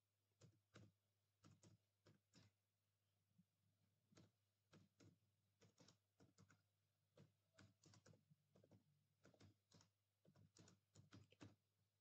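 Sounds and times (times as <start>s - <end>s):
faint keyboard typing: 0.4s - 2.6s, 4.0s - 11.8s.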